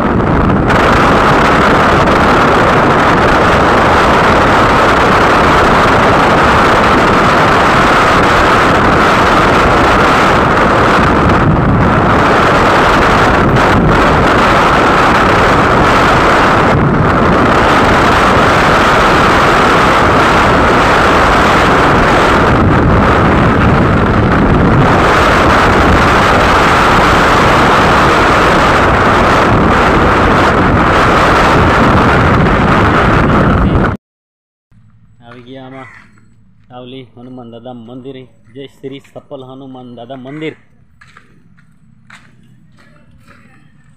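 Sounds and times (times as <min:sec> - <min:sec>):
motorbike running noise: 0:00.0 - 0:34.0, 0:34.7 - 0:43.9
wind rushing on microphone: 0:00.0 - 0:34.0.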